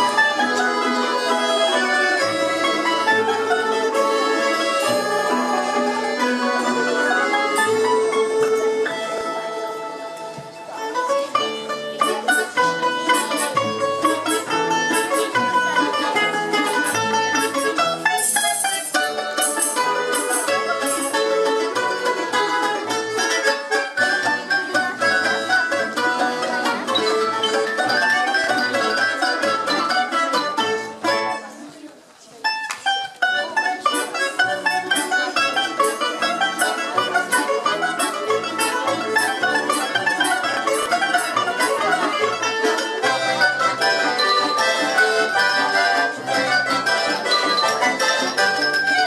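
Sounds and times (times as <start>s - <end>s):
plucked string orchestra: 0.0s - 49.0s.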